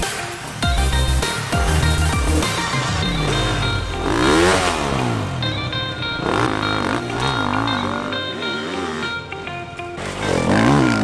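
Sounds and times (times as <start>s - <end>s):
background music: 0.0s - 11.0s
motorcycle engine revving: 0.8s - 11.0s.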